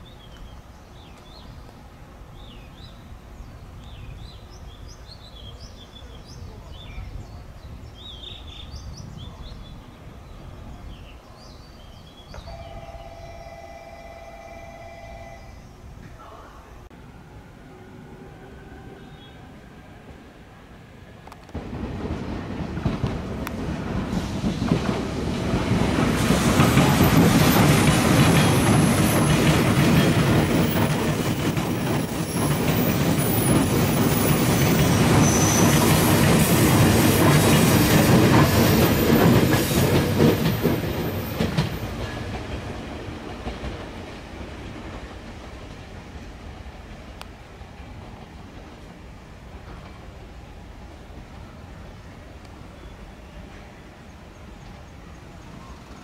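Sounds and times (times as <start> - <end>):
train wheels clattering over rail joints: 21.3 - 45.9.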